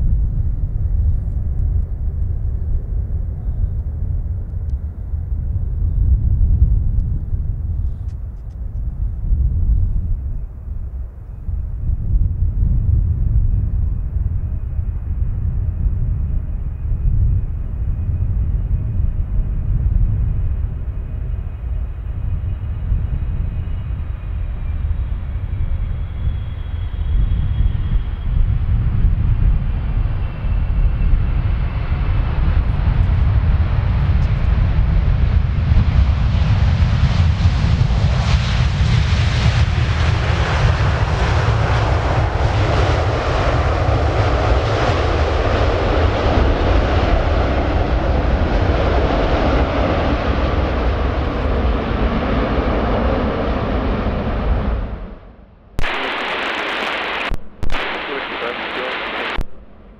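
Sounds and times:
jet airliner rolling past: 0:00.0 - 0:59.9.

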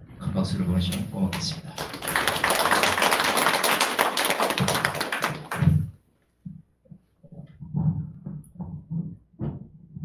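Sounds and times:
audience applause: 0:01.7 - 0:05.8
low thump: 0:07.6 - 0:10.0.

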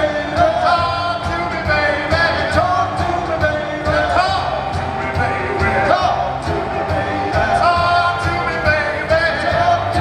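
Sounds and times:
drum beat: 0:00.0 - 0:10.0
man singing into microphone: 0:00.0 - 0:10.0.

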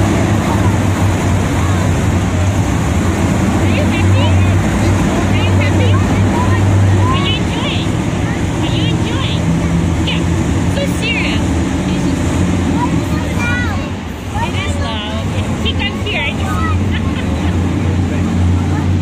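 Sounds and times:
monster truck engines running: 0:00.0 - 0:19.0.

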